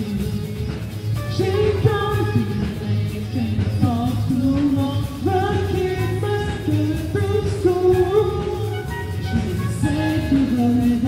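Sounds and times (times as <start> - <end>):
live band playing pop song: 0.0 - 11.0
person singing: 0.0 - 11.0.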